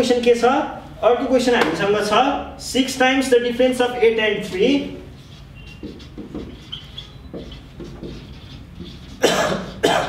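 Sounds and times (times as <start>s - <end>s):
person coughing: 9.2s - 10.0s.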